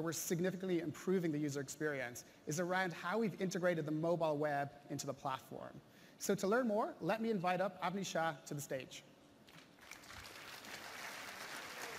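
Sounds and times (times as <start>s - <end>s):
audience applause: 9.8s - 11.9s.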